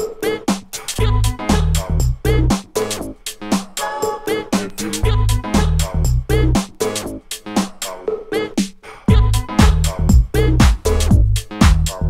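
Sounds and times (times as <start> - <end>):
dance music beat: 0.0 - 12.0
deep bass notes: 1.0 - 2.6, 5.0 - 6.6, 9.1 - 12.0.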